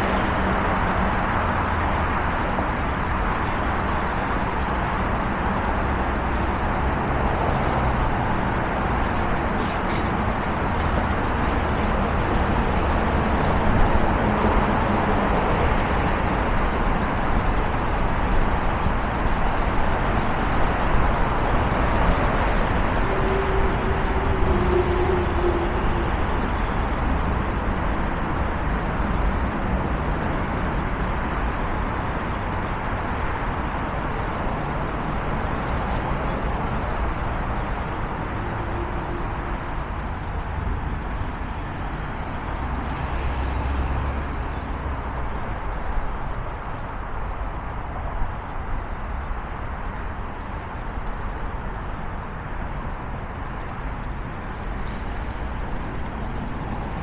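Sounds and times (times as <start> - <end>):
freeway traffic rush: 0.0 - 57.0.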